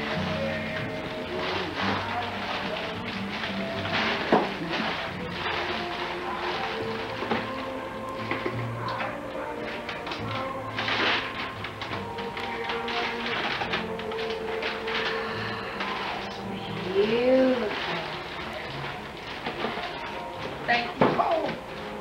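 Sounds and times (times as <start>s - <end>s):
background music: 0.0s - 22.0s
paper and tissue rustling: 0.0s - 22.0s.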